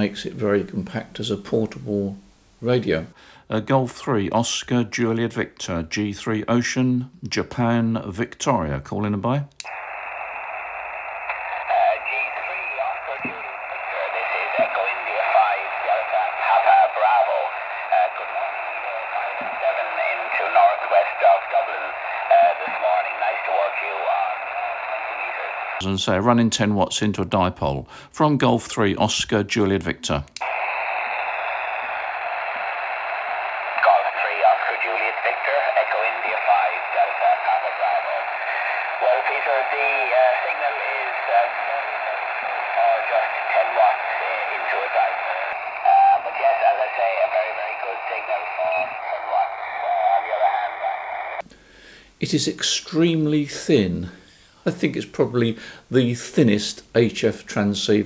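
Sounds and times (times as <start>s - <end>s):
radio band hiss: 0.0s - 3.6s, 9.6s - 26.2s, 30.4s - 58.0s
voice over radio: 11.2s - 25.9s, 30.4s - 51.4s.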